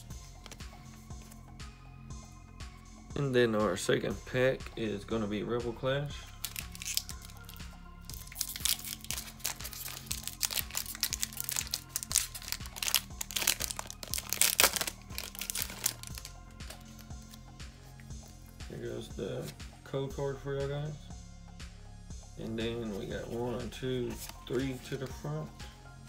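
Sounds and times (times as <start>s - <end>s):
background music: 0.0s - 26.0s
foil wrapper crinkling and tearing: 6.4s - 17.0s.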